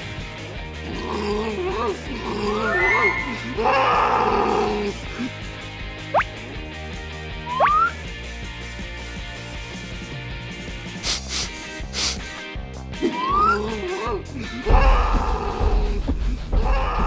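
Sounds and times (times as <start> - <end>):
background music: 0.0 - 17.0
cartoon monster crying: 0.9 - 5.3, 13.0 - 16.0
quick rising sound effects: 2.3 - 4.4.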